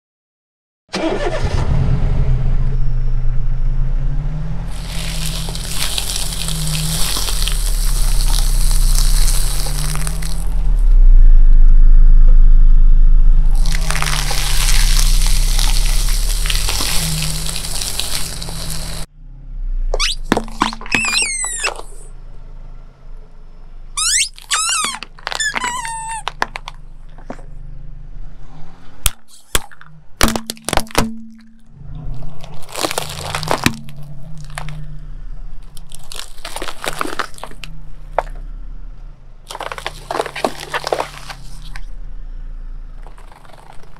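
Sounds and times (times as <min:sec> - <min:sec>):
low engine hum: 0:01.0 - 0:29.1, 0:31.3 - 0:43.9
crunching: 0:04.5 - 0:12.4, 0:13.3 - 0:19.1, 0:19.9 - 0:22.2, 0:23.9 - 0:27.7, 0:29.1 - 0:43.9
rubber toys squeaking: 0:04.7 - 0:10.9, 0:13.5 - 0:19.1, 0:19.9 - 0:22.1, 0:23.9 - 0:27.5, 0:35.6 - 0:38.4, 0:39.5 - 0:41.9, 0:43.0 - 0:43.9
tyre crinkling foil: 0:04.7 - 0:10.9, 0:13.5 - 0:19.1, 0:24.0 - 0:27.4, 0:32.2 - 0:34.9, 0:35.6 - 0:38.4, 0:39.5 - 0:41.9, 0:43.0 - 0:43.9.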